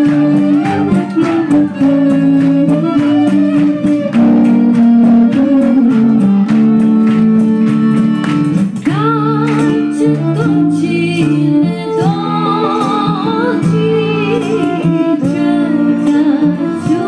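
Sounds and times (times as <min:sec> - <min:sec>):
woman singing: 0:00.0 - 0:03.9, 0:05.0 - 0:06.5, 0:08.8 - 0:17.0
accordion: 0:00.0 - 0:17.0
bowed violin melody: 0:00.0 - 0:17.0
double bass: 0:00.0 - 0:17.0
hand drum: 0:00.0 - 0:17.0.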